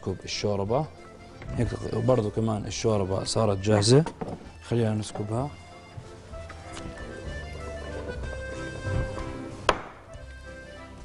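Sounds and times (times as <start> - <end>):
background music sustained notes: 0.0 - 11.0
sharp knock: 9.7 - 10.1.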